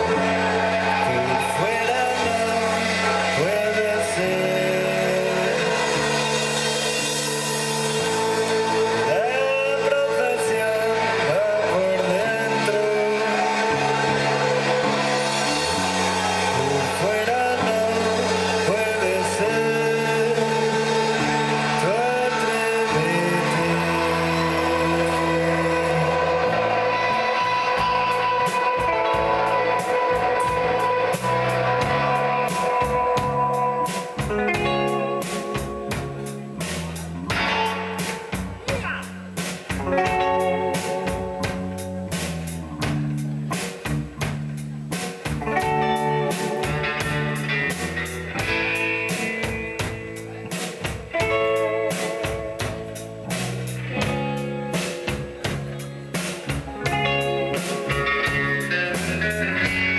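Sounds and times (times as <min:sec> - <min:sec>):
drums: 0:00.0 - 0:59.9
electric guitars: 0:00.0 - 0:59.9
man singing: 0:01.0 - 0:15.9, 0:16.5 - 0:37.2.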